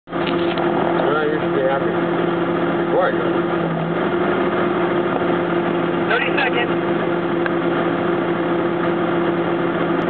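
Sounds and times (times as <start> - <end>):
engine droning: 0.1 - 10.0.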